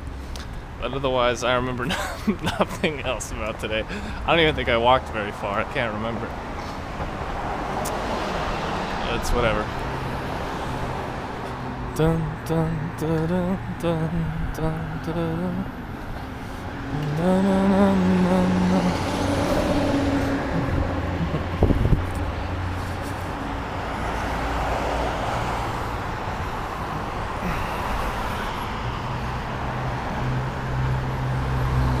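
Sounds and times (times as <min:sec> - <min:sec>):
cars driving past: 0:02.2 - 0:32.0
low engine hum: 0:09.1 - 0:32.0.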